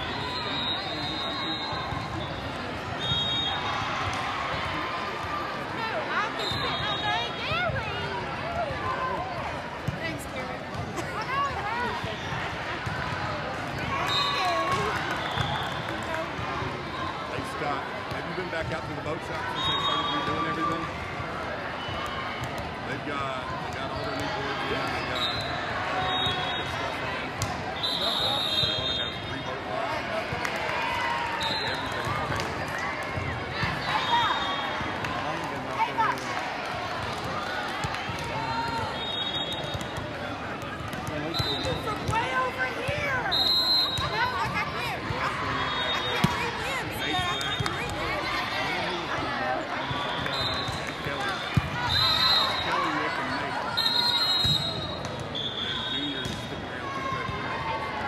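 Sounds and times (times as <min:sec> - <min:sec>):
many overlapping voices: 0:00.0 - 0:58.0
sneakers squeaking: 0:38.6 - 0:48.2.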